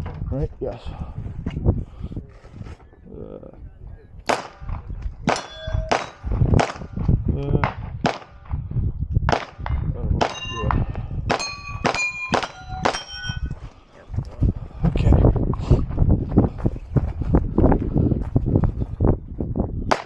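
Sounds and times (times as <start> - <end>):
pistol shots: 4.3 - 7.0, 7.8 - 8.5, 11.3 - 13.0
steel plate ringing clang: 5.3 - 6.3, 10.3 - 13.6.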